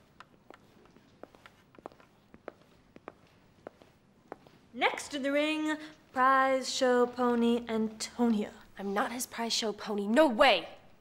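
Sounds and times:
footsteps on hard floor: 0.0s - 4.7s.

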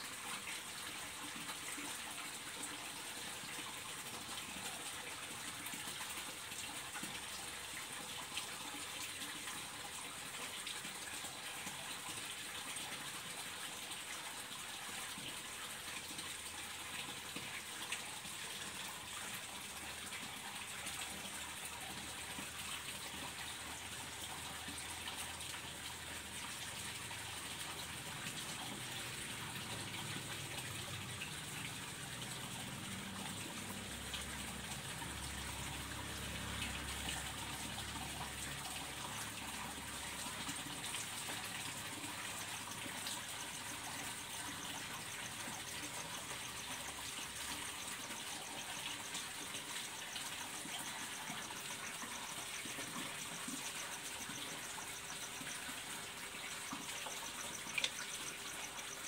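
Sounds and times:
running water rushing: 0.0s - 59.0s.

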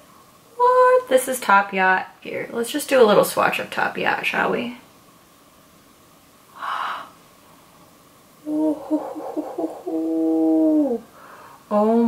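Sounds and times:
woman gasping: 8.5s - 11.6s.

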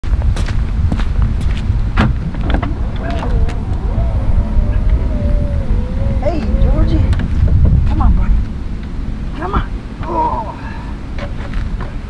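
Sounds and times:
knocks and footsteps: 0.1s - 4.1s
low steady rumble: 0.1s - 10.0s
dog whining: 2.4s - 7.2s.

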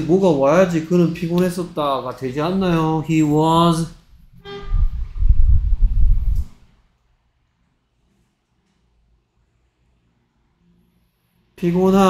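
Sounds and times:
low rumbling on microphone: 3.8s - 6.7s.

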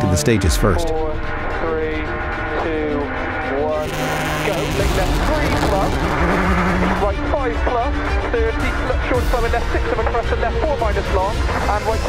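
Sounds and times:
music: 0.0s - 12.0s
voices: 0.0s - 12.0s
rally car engine revving: 1.4s - 8.8s.

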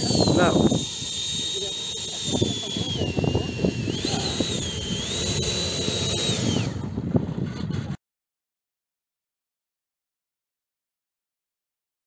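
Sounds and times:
electric ducted fan whining: 0.0s - 8.0s.

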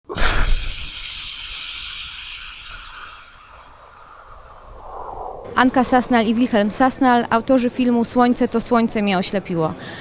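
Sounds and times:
steady hiss: 0.1s - 4.9s
whoosh with low rumble: 3.4s - 5.7s.

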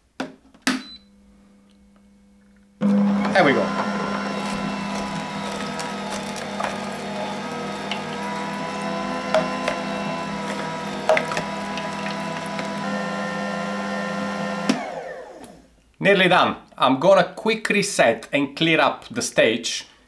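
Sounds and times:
juicer motor humming: 2.8s - 15.6s.

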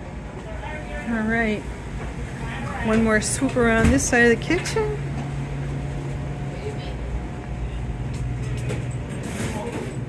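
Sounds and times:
kitchen equipment hum: 0.0s - 10.0s.

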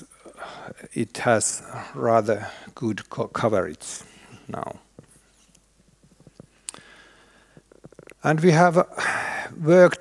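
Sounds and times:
faint irregular clicks and taps: 4.9s - 6.9s.

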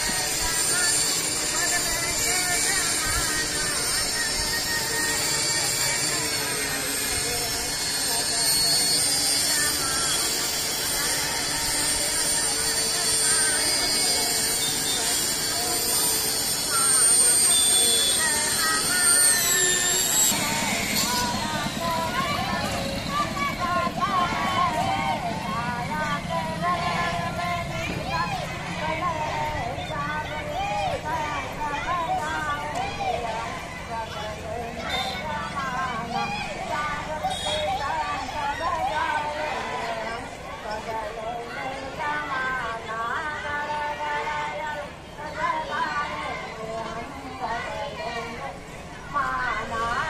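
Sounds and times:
held tones and high whine: 0.0s - 39.9s
crowd voices: 0.0s - 50.0s.

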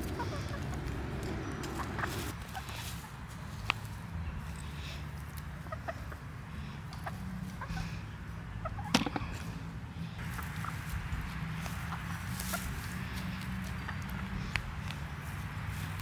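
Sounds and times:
hens clucking: 0.0s - 3.9s, 4.5s - 16.0s.

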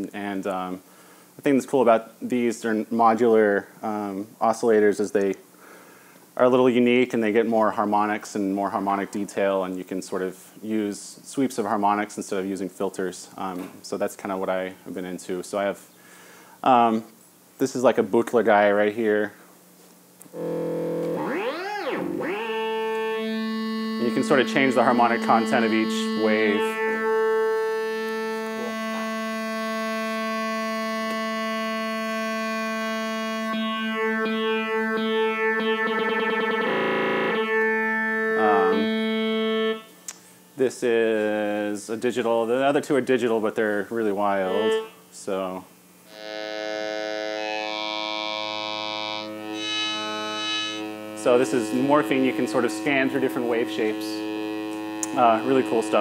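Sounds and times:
buzzy synthesizer tone: 20.3s - 42.8s, 44.0s - 56.0s.

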